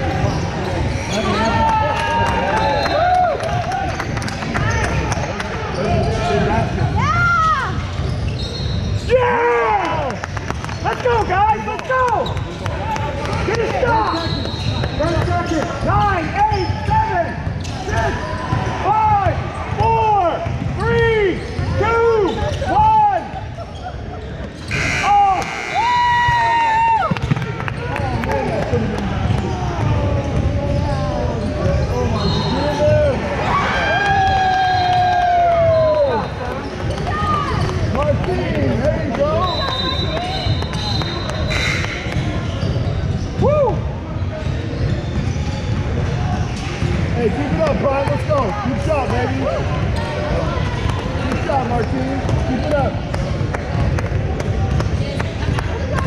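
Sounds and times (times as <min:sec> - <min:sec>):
shoes squeaking on hardwood floor: 0:05.6 - 0:09.1, 0:12.2 - 0:18.7, 0:38.6 - 0:43.5
basketball dribbling thuds: 0:27.1 - 0:27.9.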